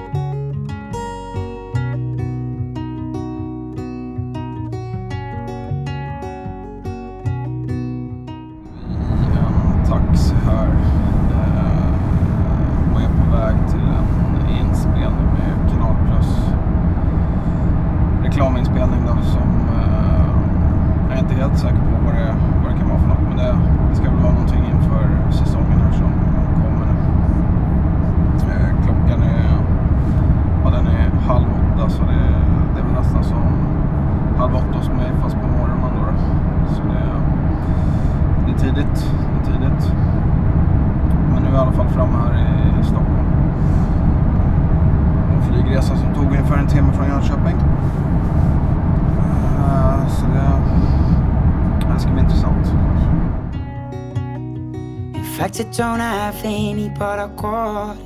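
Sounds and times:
car cabin road rumble: 0:08.6 - 0:53.7.

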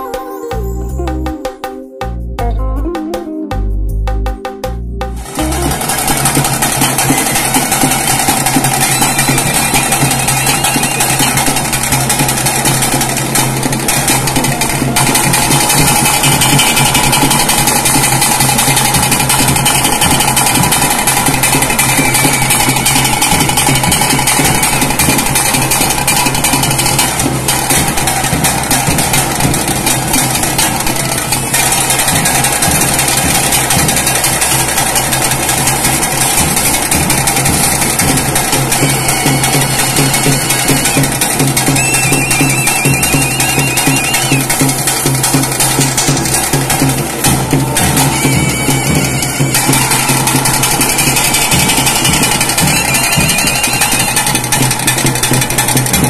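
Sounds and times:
steady held tone: 0:00.0 - 0:12.0, 0:38.6 - 0:44.5
rapid drumming: 0:00.0 - 0:56.0.

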